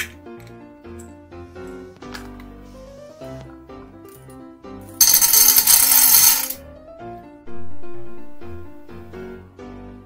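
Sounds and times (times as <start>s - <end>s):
background music: 0.0s - 10.0s
beads rattling into tin: 5.0s - 6.6s.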